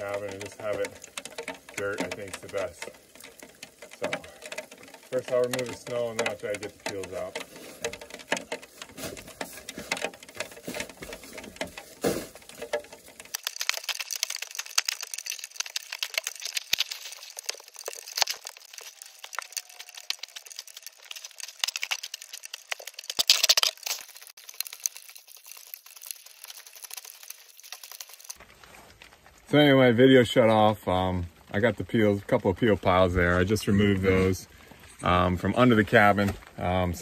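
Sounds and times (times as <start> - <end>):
snow shovel scraping snow: 7.5 - 7.8, 8.9 - 9.9, 10.6 - 12.4.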